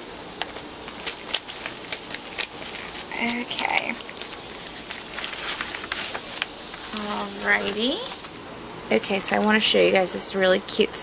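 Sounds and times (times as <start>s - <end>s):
paper rustling and crinkling: 0.4s - 8.4s.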